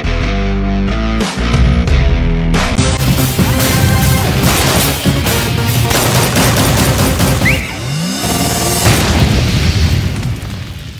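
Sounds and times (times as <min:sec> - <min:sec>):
dramatic music: 0:00.0 - 0:10.2
rapid gunfire burst: 0:03.4 - 0:07.7
rising sweep: 0:07.4 - 0:08.9.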